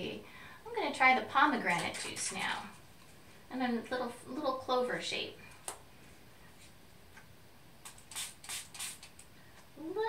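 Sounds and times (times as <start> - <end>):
spray bottle spritzing: 7.8 - 9.3.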